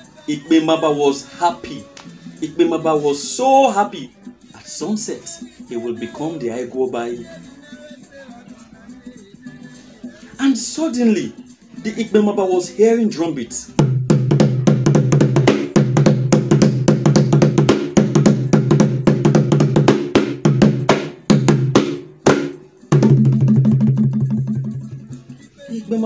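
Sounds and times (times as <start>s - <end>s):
fast pitched drum strokes: 13.8s - 25.0s.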